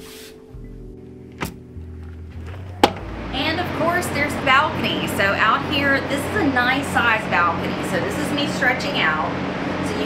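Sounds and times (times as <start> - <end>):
background music: 0.0 - 8.4.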